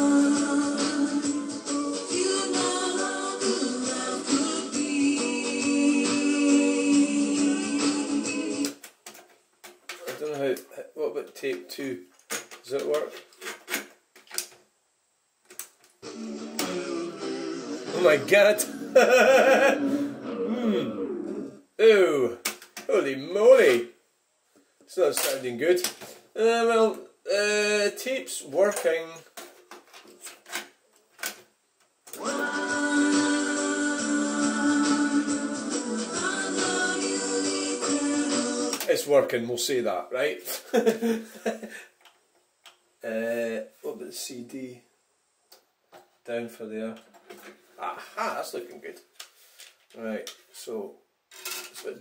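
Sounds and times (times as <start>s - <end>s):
music from a cassette: 0.0s - 9.1s, 16.0s - 20.4s, 32.1s - 39.1s.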